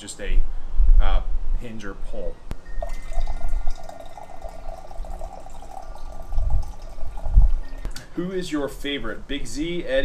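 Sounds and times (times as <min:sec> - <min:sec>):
coffee pouring into mug: 0:02.8 - 0:07.9
low rumbles: 0:06.1 - 0:08.0.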